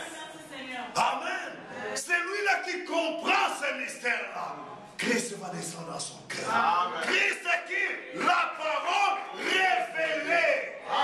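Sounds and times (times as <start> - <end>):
man preaching loudly: 1.0 - 4.3, 6.4 - 10.8.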